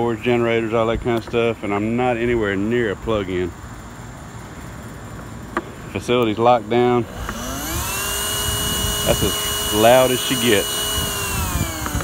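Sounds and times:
insect noise with high whine: 0:00.0 - 0:08.7.

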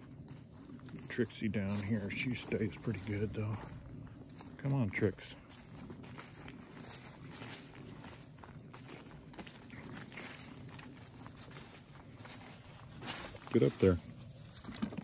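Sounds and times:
footsteps through tall grass: 0:00.0 - 0:15.0.

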